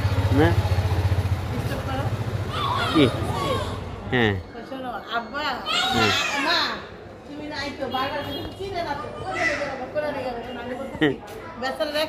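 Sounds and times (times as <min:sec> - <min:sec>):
small engine idling: 0:00.0 - 0:03.4.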